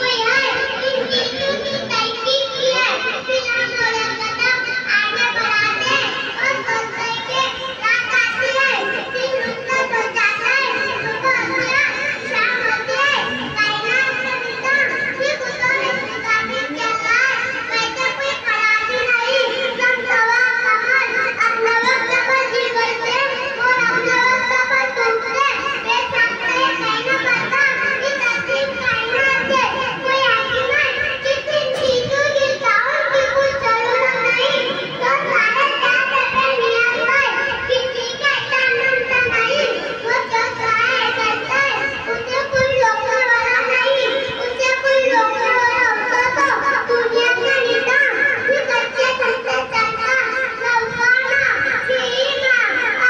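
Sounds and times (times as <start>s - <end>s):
boy speaking over loudspeaker: 0.0s - 53.0s.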